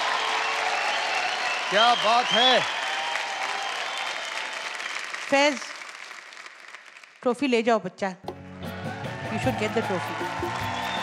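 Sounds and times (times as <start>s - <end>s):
audience applauding: 0.0s - 7.2s, 8.7s - 11.0s.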